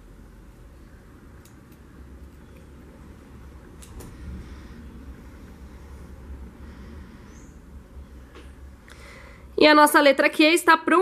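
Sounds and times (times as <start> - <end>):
low steady rumble: 0.0 - 10.5
scissors snipping yarn: 1.3 - 2.7.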